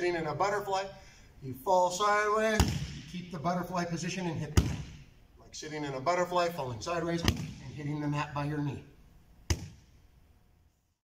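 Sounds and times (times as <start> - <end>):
body slapping onto mat: 9.5 - 9.9.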